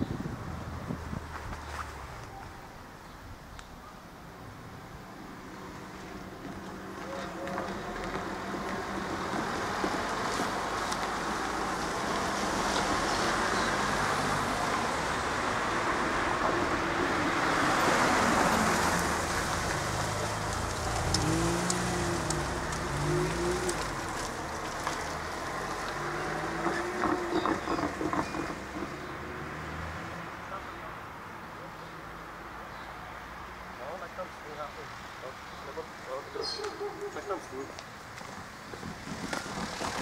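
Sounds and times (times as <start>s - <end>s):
cars driving past: 4.4s - 40.0s.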